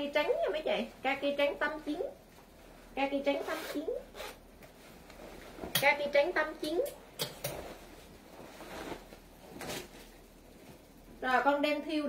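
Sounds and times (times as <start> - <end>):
jacket zipper unzipping: 3.4 - 4.4.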